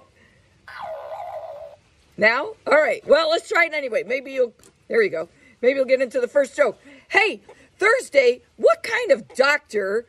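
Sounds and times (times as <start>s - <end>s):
hen call: 0.7s - 1.8s.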